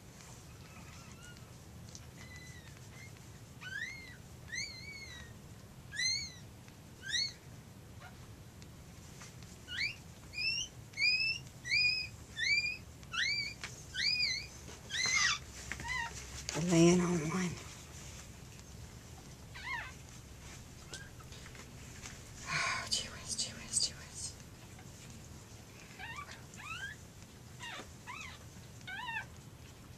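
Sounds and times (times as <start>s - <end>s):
puppy crying in high squeaks: 0.6s - 1.6s, 2.2s - 5.3s, 5.9s - 8.2s, 9.6s - 16.2s, 19.5s - 20.0s, 26.0s - 27.0s, 27.6s - 29.4s.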